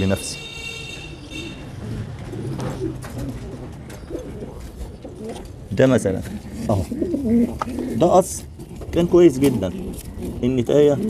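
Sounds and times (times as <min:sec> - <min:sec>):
pigeons cooing: 0:00.8 - 0:11.0.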